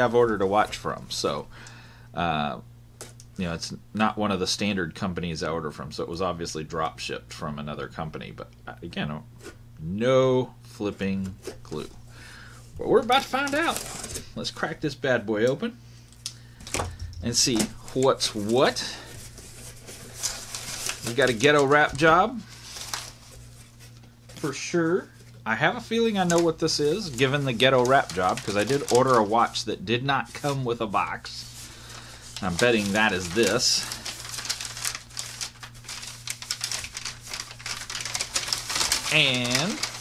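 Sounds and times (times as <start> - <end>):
steady low hum: 0.0 - 40.0
cardboard and wrap rustling: 12.8 - 14.8, 16.6 - 29.6, 30.2 - 40.0.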